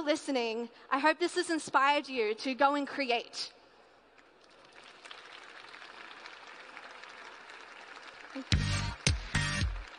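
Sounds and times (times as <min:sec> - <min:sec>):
audience applauding: 0:04.4 - 0:09.9.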